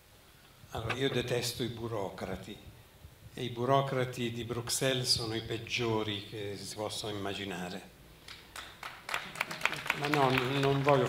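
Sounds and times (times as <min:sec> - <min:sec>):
audience clapping: 0:08.2 - 0:11.0.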